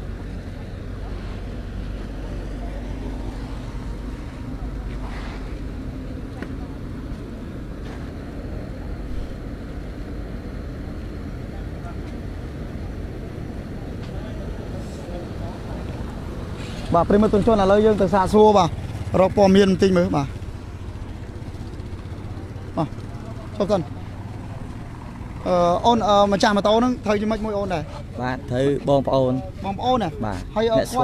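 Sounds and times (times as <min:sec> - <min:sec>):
faint voices: 0:00.0 - 0:31.0
traffic rumble: 0:00.0 - 0:31.0.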